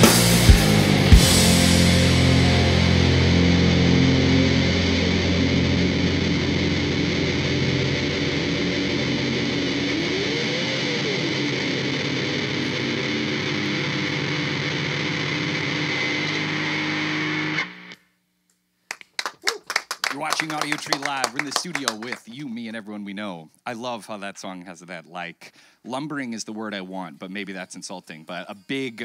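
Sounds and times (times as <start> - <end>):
distorted electric guitar: 0.0 - 18.0
people clapping: 18.9 - 22.3.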